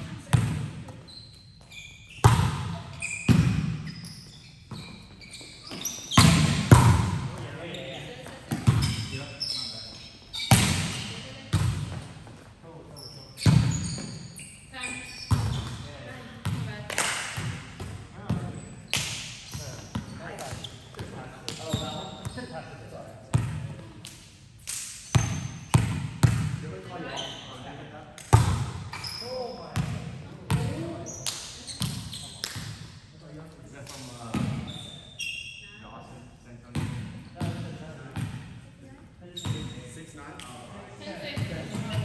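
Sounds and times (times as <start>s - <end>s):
sneakers squeaking on court: 0.0s - 16.8s, 17.4s - 22.6s, 25.0s - 27.6s, 28.3s - 32.8s, 33.9s - 35.8s, 39.2s - 40.0s, 41.1s - 42.0s
volleyball hits echoing: 2.2s - 3.9s, 6.1s - 7.5s, 10.5s - 12.1s, 28.2s - 29.0s.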